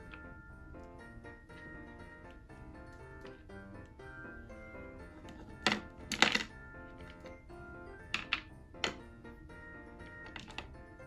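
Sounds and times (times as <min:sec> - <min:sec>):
background music: 0:00.0 - 0:11.0
plastic toys clacking on table: 0:05.2 - 0:07.3, 0:08.0 - 0:09.1, 0:10.1 - 0:10.8.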